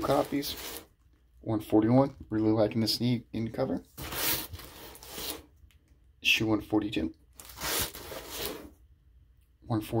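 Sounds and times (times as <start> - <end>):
plastic-bagged comics rustling: 0.0 - 0.9, 7.4 - 8.7.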